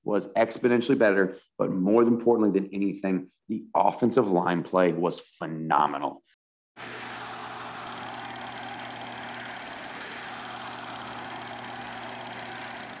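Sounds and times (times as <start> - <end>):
machine-like whirring hum: 6.8 - 13.0.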